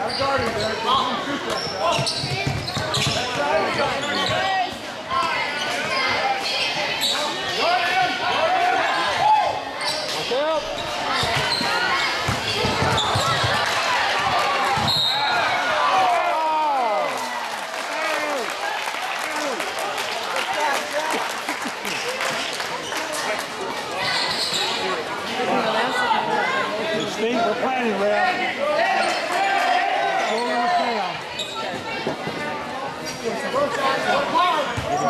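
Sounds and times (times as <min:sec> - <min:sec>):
crowd and player voices shouting: 0:03.2 - 0:21.3, 0:23.8 - 0:31.6.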